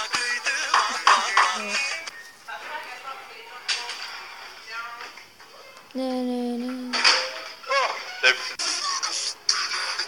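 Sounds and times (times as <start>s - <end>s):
music: 0.0s - 2.5s, 7.7s - 10.0s.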